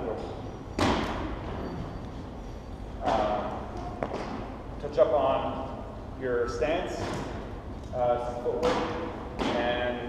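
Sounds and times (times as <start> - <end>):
thump echoing in a gym hall: 0.0 - 2.0, 2.9 - 5.7, 6.4 - 10.0.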